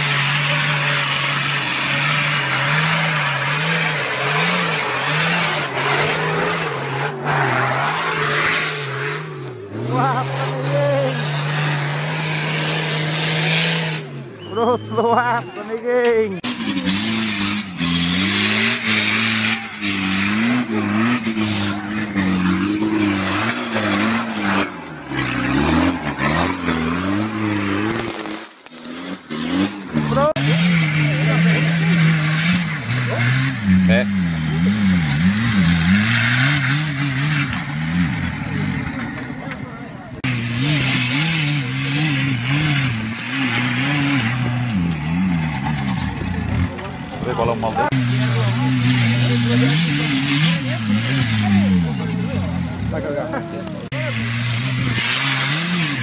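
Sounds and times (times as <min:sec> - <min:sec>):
off-road engine revving hard: 0:00.0 - 0:56.0
second engine revving: 0:00.0 - 0:56.0
wheels spinning on loose ground: 0:00.0 - 0:56.0.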